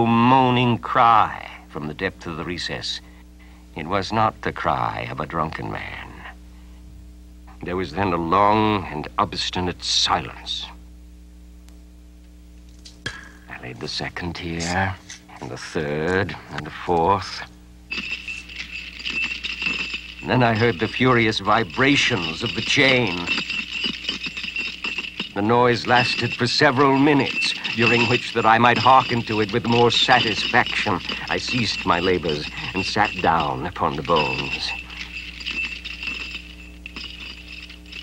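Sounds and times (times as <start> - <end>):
thin steady high tone: 17.2 - 38.0
iron chain rattling and clanking: 17.9 - 38.0.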